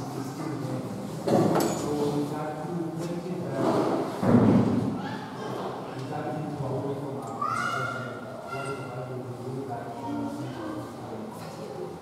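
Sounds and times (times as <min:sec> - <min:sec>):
voices talking in a hall: 0:00.0 - 0:12.0
loud thump: 0:04.2 - 0:04.9.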